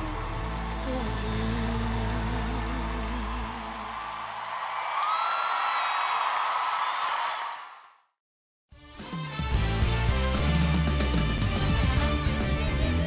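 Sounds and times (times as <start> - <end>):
audience cheering and applauding: 0.0 - 8.0.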